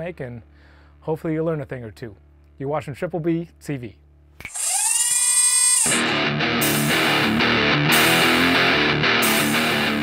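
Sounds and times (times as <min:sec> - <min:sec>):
high whining tone: 0:04.4 - 0:06.2
guitar theme music: 0:05.8 - 0:10.0.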